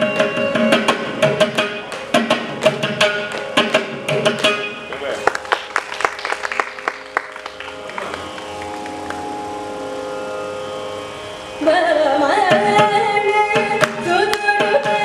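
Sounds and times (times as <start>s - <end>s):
mridangam strokes: 0.0s - 9.8s, 12.4s - 15.0s
violin: 6.6s - 15.0s
woman singing: 11.6s - 15.0s.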